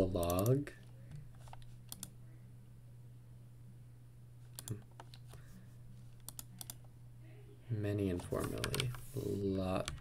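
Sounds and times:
steady low hum: 0:00.0 - 0:10.0
faint keyboard keystrokes: 0:08.2 - 0:09.0.

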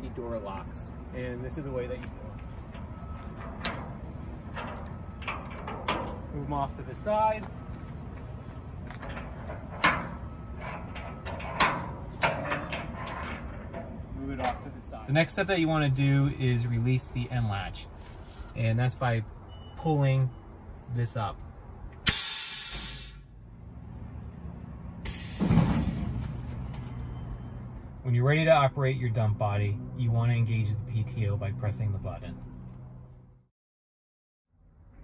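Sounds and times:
metallic latch clunk: 0:03.4 - 0:06.3, 0:09.0 - 0:14.6.

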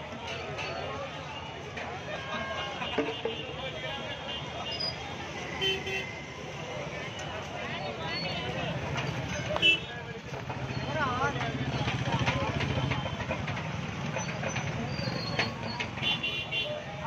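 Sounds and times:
crowd voices: 0:00.0 - 0:17.0
motorbike and vehicle engines: 0:00.0 - 0:17.0.

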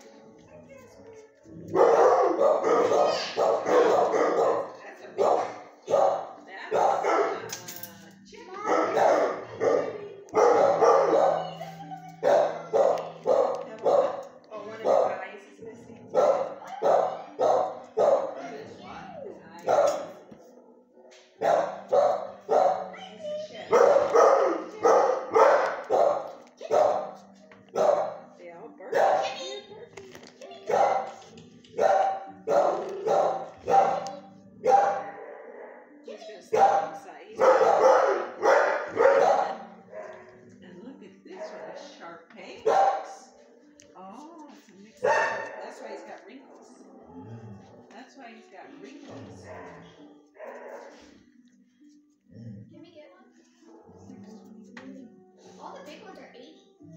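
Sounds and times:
dogs barking: 0:01.6 - 0:07.6, 0:08.6 - 0:15.3, 0:16.0 - 0:18.8, 0:19.6 - 0:23.0, 0:23.6 - 0:29.4, 0:30.6 - 0:40.6, 0:41.3 - 0:42.0, 0:42.6 - 0:43.3, 0:45.0 - 0:46.1, 0:49.1 - 0:51.2.

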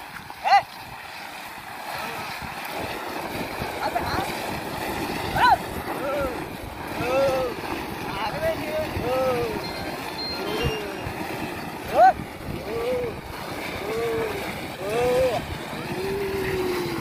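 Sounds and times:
people shouting calls: 0:00.4 - 0:00.7, 0:05.3 - 0:07.6, 0:08.9 - 0:11.2, 0:11.8 - 0:17.0.

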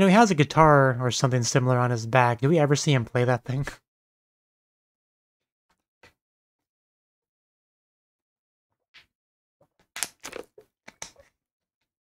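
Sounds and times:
plastic bottle crinkling: 0:10.0 - 0:11.2.

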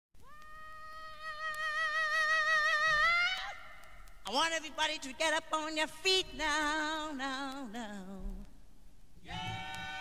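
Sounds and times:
man singing a high wail: 0:00.2 - 0:03.7, 0:09.2 - 0:10.0.

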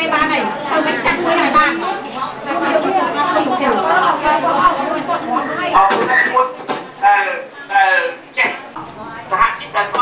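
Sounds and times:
woman talking into a microphone: 0:00.0 - 0:05.7
chatter of voices: 0:00.0 - 0:10.0.

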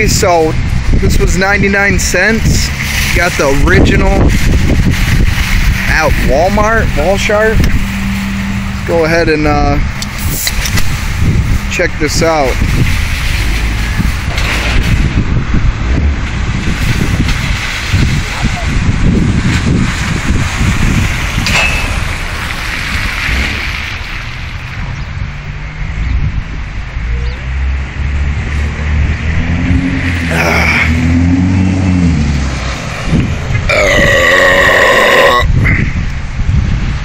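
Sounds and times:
wind buffeting microphone: 0:00.0 - 0:37.0
loud drawn-out burp: 0:33.7 - 0:35.7.

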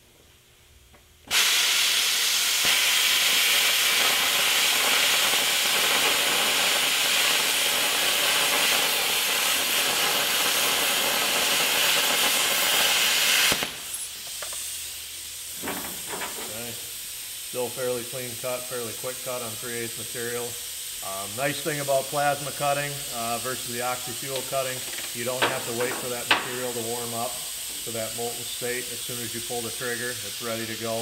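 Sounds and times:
soft air hiss: 0:00.0 - 0:31.0
plasma torch cutting hiss: 0:01.2 - 0:31.0.

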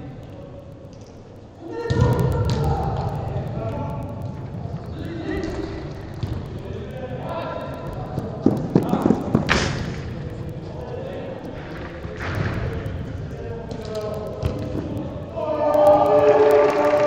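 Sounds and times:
players shouting: 0:14.0 - 0:17.0.

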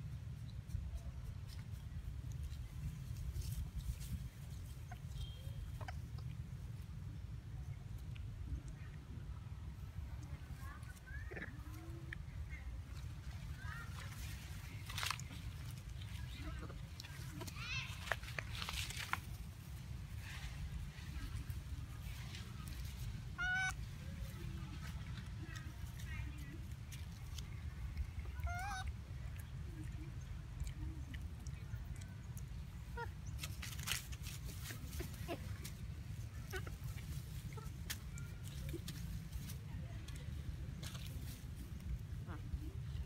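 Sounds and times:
steady low rumble: 0:00.0 - 0:43.0
monkey squealing calls: 0:23.4 - 0:23.8, 0:28.4 - 0:28.9.

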